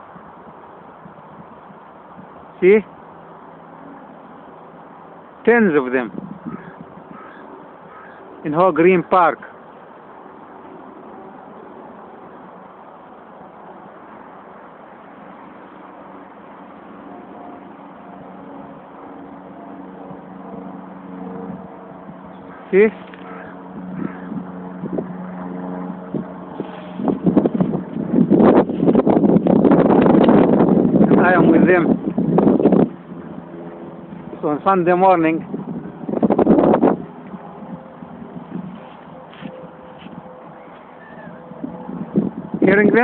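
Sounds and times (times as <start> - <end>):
distant road traffic hum: 0.0 - 43.0
wind gusting on microphone: 0.0 - 43.0
faint steady tones: 1.6 - 27.2.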